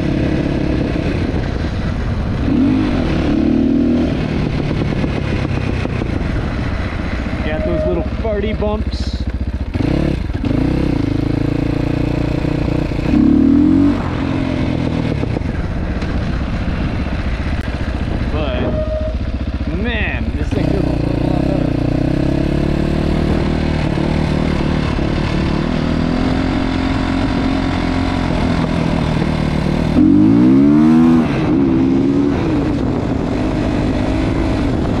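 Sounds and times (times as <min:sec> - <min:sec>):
motorcycle engine revving: 0:00.0 - 0:35.0.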